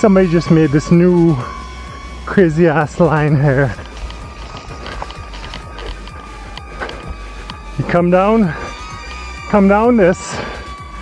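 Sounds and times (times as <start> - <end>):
background music: 0.0 - 11.0
footsteps on dirt trail: 0.0 - 11.0.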